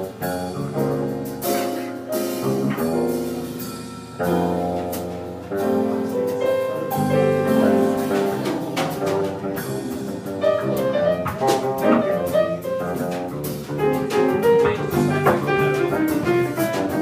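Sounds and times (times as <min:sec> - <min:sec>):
drum kit with cymbals: 0:00.0 - 0:17.0
electric bass guitar: 0:00.0 - 0:17.0
grand piano: 0:00.0 - 0:17.0.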